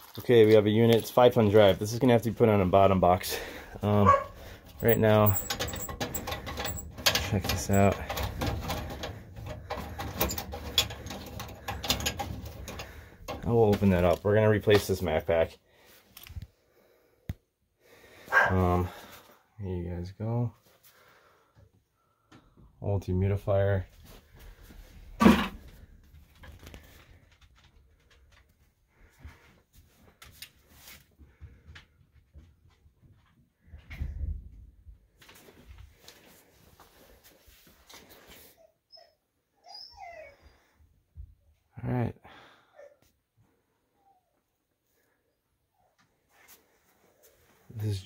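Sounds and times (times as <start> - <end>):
hand tool clicking and scraping: 4.5 - 14.1.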